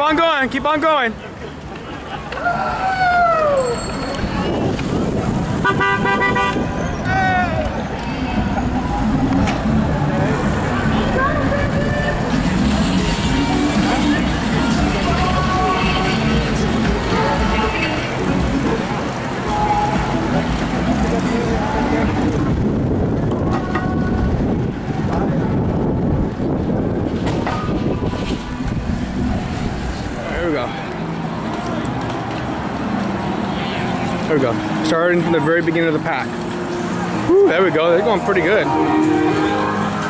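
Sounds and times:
voices of riders: 0.0s - 40.0s
wind and road noise rumble: 0.0s - 40.0s.

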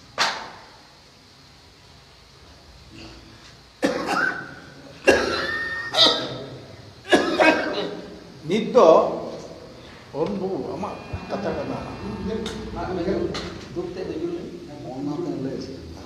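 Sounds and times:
person coughing: 3.8s - 6.3s, 7.1s - 7.9s.

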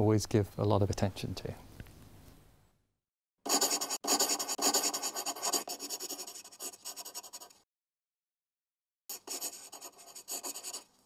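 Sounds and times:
pen scratching on paper: 3.5s - 7.6s, 9.1s - 10.9s.

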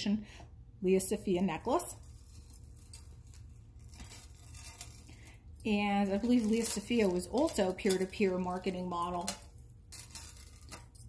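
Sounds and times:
low steady hum: 0.0s - 11.0s
metal chain necklace rustling: 1.7s - 11.0s.

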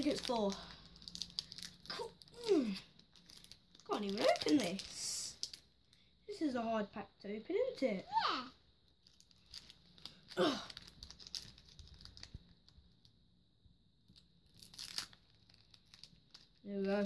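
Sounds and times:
foil wrapper tearing: 0.0s - 5.6s, 9.0s - 12.8s, 14.1s - 17.0s
foil wrapper crinkling: 0.0s - 6.0s, 8.9s - 13.1s, 14.1s - 17.0s.

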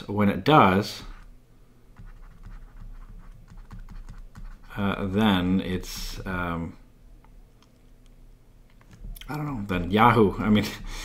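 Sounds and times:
stylus tapping on drawing tablet: 2.0s - 4.6s.

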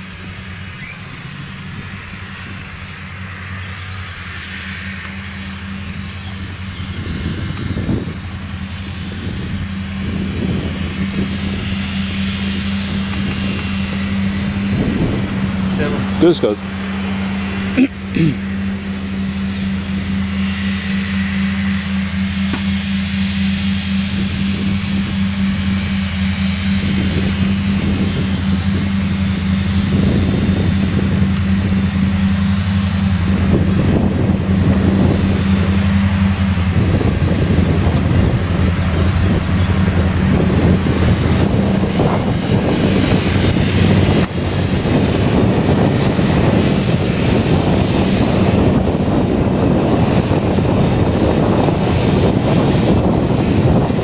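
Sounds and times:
tractor engine running: 0.0s - 54.0s
mower discs cutting grass: 10.1s - 19.2s.

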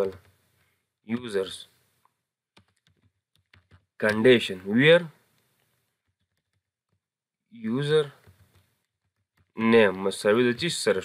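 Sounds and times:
faint keyboard keystrokes: 2.0s - 4.4s, 5.3s - 7.1s, 8.1s - 10.0s.

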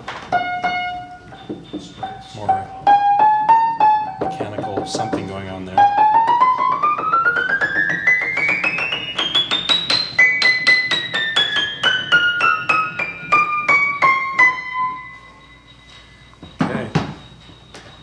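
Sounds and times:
piano treble notes: 0.0s - 18.0s.

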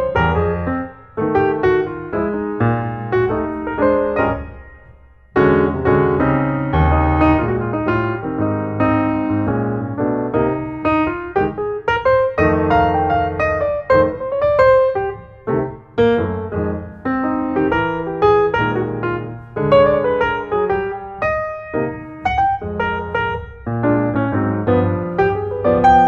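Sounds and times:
solo piano playing: 0.0s - 26.0s.

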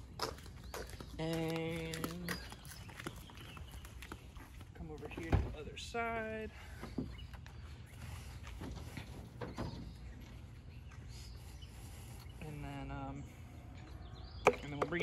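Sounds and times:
outdoor background noise: 0.0s - 15.0s.

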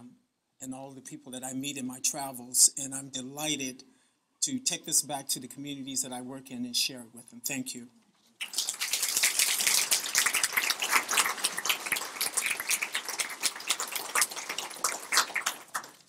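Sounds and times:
audience applause: 8.4s - 16.0s.

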